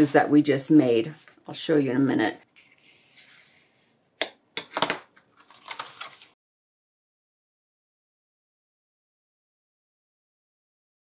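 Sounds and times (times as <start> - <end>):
paper clicks and crackles: 4.8 - 6.4
paper rustling: 4.8 - 6.4.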